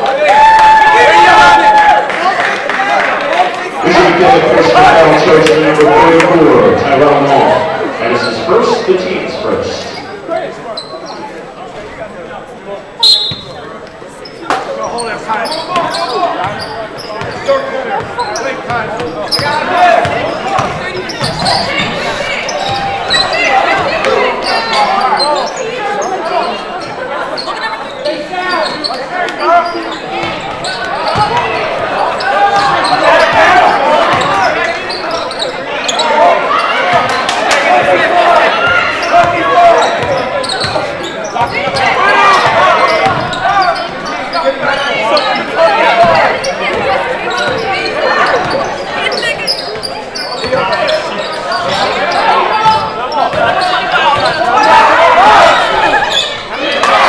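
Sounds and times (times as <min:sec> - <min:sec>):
people talking and calling out: 0:00.0 - 0:57.0.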